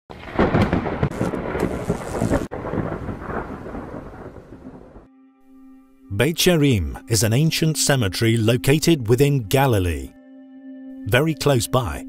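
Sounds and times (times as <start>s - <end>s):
thunder rumbling: 0.1s - 5.1s
rain hiss: 0.3s - 4.9s.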